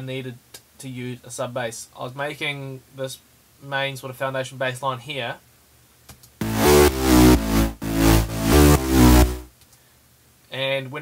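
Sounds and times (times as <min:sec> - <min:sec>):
gritty synth bass line: 0:06.4 - 0:09.5.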